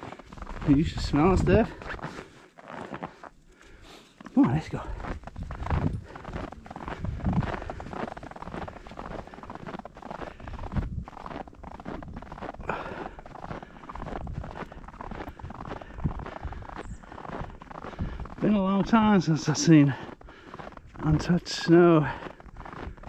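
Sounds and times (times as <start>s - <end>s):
footsteps crunching through snow: 0.0s - 23.0s.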